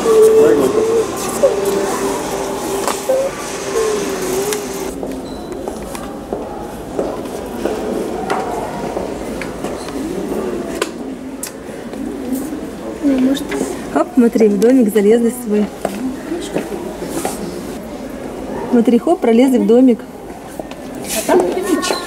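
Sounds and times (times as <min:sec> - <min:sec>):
indistinct background voices: 0:00.0 - 0:05.1.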